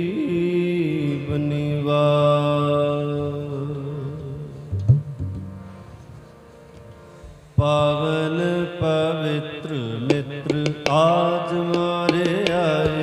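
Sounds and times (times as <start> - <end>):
harmonium reed chords: 0.0 - 13.0
tabla strokes: 4.7 - 5.8, 10.0 - 13.0
person singing: 7.6 - 13.0.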